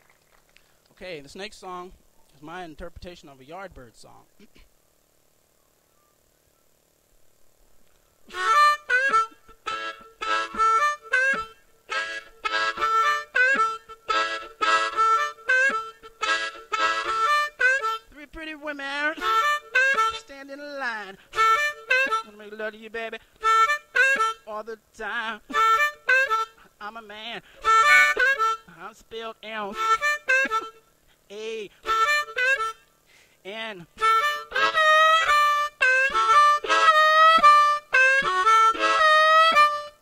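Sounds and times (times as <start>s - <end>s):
breaths: 0.5s - 1.0s, 21.1s - 21.4s, 23.2s - 23.4s, 27.4s - 27.7s, 31.0s - 31.9s, 33.0s - 33.4s
blues harmonica riff: 8.2s - 40.0s.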